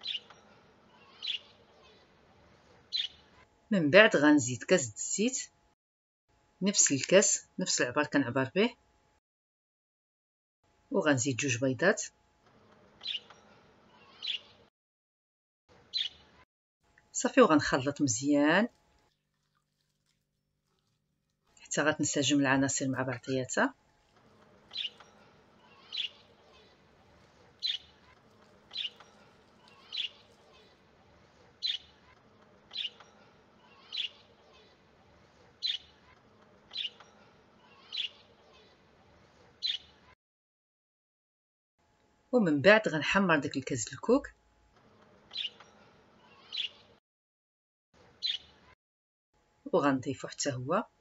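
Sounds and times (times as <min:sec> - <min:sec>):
small bird chirping: 0:00.0 - 0:02.1, 0:02.9 - 0:03.3, 0:13.0 - 0:14.6, 0:15.9 - 0:16.4, 0:24.0 - 0:30.8, 0:31.6 - 0:34.8, 0:35.6 - 0:38.8, 0:39.6 - 0:40.0, 0:45.3 - 0:46.9, 0:48.2 - 0:48.7.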